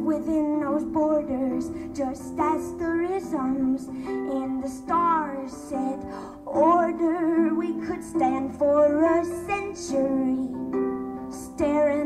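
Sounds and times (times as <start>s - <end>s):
woman singing: 0.0s - 10.6s, 11.3s - 12.0s.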